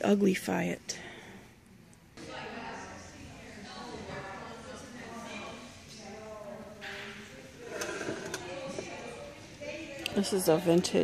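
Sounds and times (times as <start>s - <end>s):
indistinct chatter in a hall: 1.4s - 11.0s.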